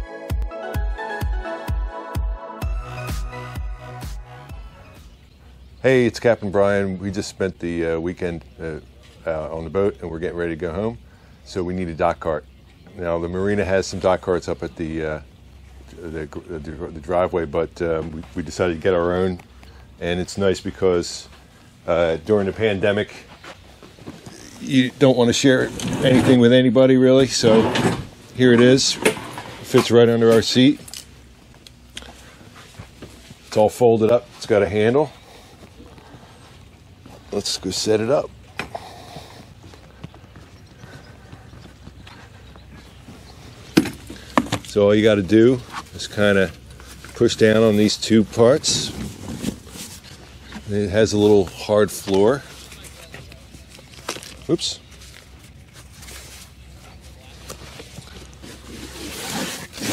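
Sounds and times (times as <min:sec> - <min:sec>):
steady low background noise: 0:04.8 - 0:59.9.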